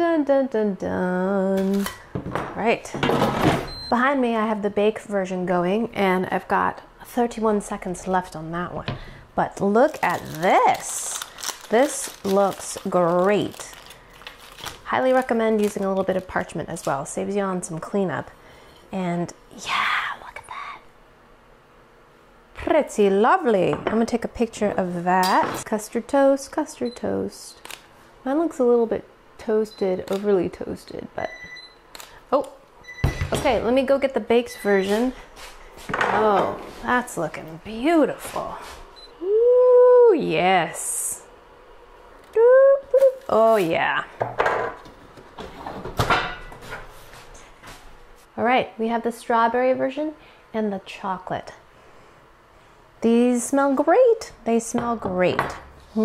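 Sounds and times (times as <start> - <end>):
woman whispering: 19.5 - 20.9.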